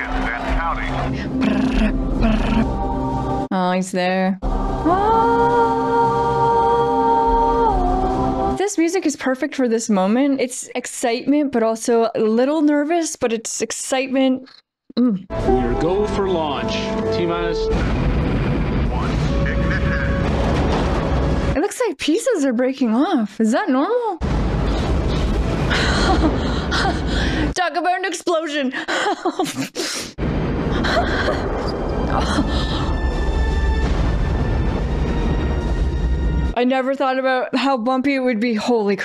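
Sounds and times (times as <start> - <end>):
orchestral music: 0.0 - 3.5, 15.3 - 21.6, 31.4 - 36.6
rocket engines roaring: 16.6 - 21.6
rocket launch rumble: 17.5 - 21.6, 24.2 - 27.5.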